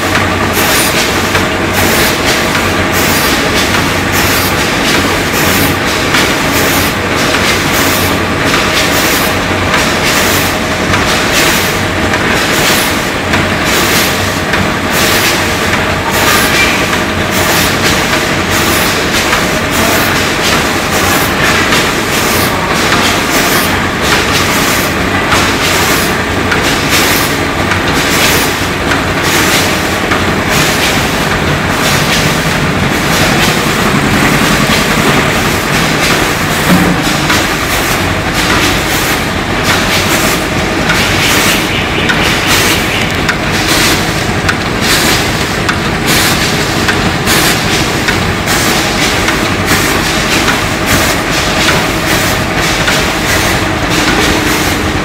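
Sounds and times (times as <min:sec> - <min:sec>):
mechanical hum: 0:00.0 - 0:55.0
packing machine clattering: 0:00.0 - 0:55.0.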